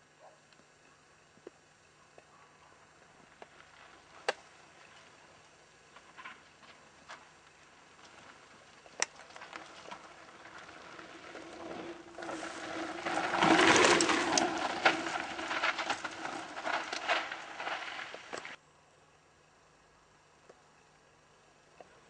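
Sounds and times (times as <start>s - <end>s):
bike tyres rushing on dirt: 3.1s - 18.6s
bike clattering over bumps: 5.9s - 18.6s.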